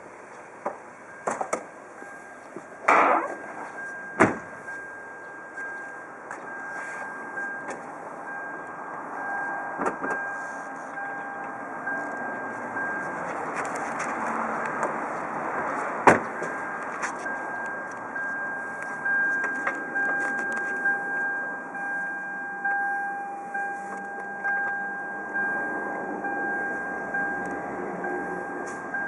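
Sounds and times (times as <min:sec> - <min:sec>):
steady background noise: 0:00.0 - 0:29.0
car trunk lid slamming shut: 0:04.2 - 0:04.5, 0:16.0 - 0:16.3.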